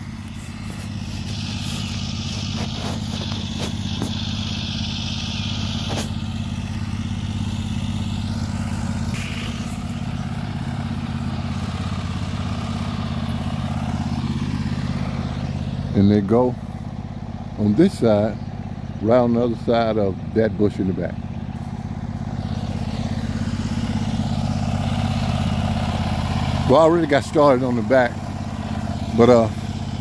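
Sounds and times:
engine running steadily: 0.0s - 30.0s.

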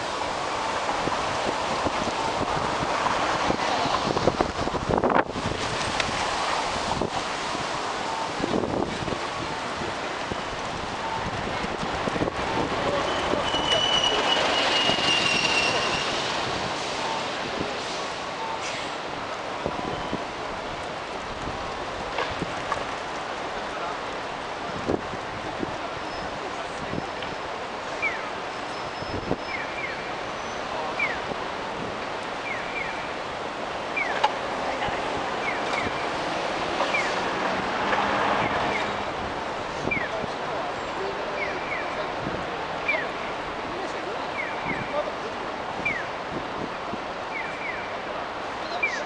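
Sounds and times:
street traffic: 0.0s - 49.0s
bus high-pitched squeal: 12.8s - 16.4s, 19.8s - 20.2s, 28.0s - 31.2s, 38.4s - 39.0s
crossing signal chirps: 32.4s - 33.1s.

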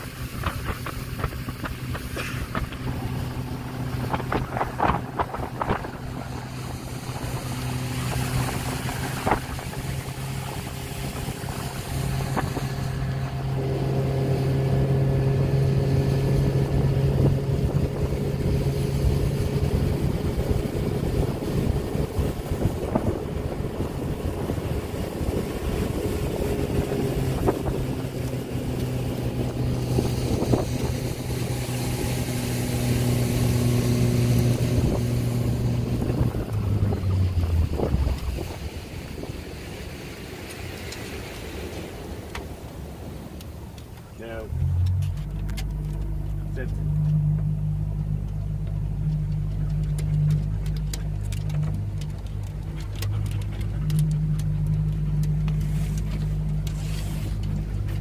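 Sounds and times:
motorboat engine running: 0.0s - 58.0s
water rushing past: 0.0s - 58.0s
wind: 0.0s - 58.0s.

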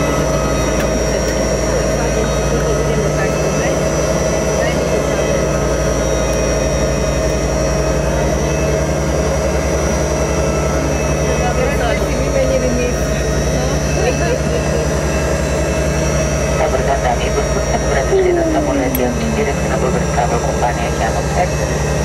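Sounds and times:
jet engines whining: 0.0s - 22.0s.

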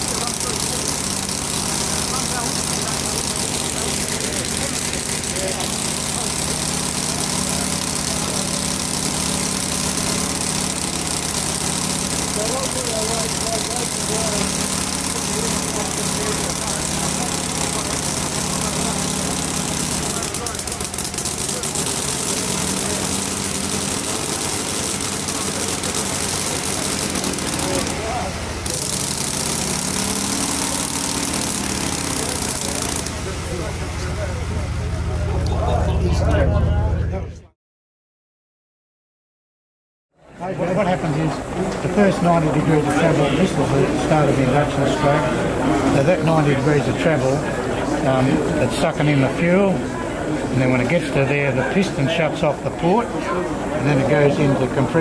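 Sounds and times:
small model engine running: 0.0s - 36.5s, 40.4s - 55.0s.

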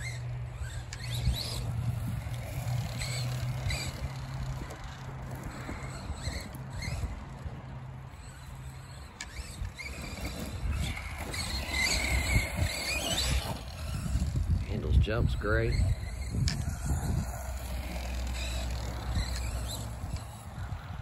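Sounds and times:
electric motor whining: 0.0s - 21.0s
rumble of tyres and drivetrain: 0.0s - 21.0s.

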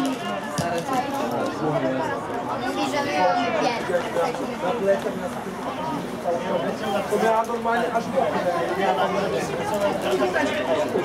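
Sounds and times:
people chatting: 0.0s - 11.0s.

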